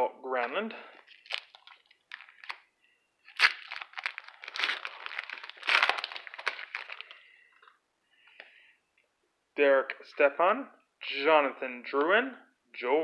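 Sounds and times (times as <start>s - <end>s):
foil wrapper crinkling: 1.0s - 7.2s
foil wrapper tearing: 1.1s - 2.6s, 3.2s - 7.2s.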